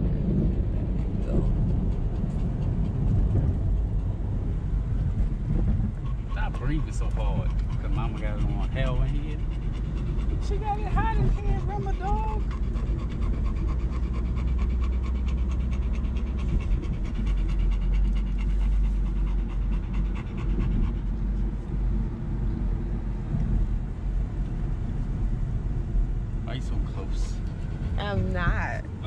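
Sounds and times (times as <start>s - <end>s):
car engine and road noise: 0.0s - 29.0s
dog panting: 0.1s - 21.8s, 27.0s - 28.6s.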